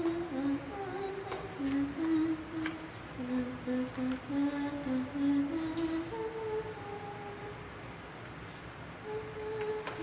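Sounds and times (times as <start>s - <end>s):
woman humming softly: 9.0s - 10.0s.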